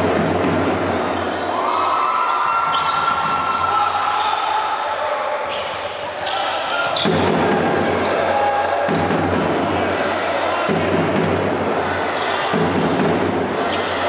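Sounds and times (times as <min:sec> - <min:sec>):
players and crowd voices: 0:00.0 - 0:14.0.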